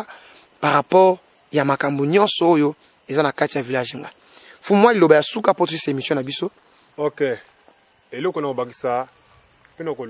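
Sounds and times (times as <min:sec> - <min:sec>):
high-pitched insect trill: 0:00.0 - 0:10.0
man talking: 0:00.6 - 0:07.4, 0:08.1 - 0:09.1, 0:09.8 - 0:10.0.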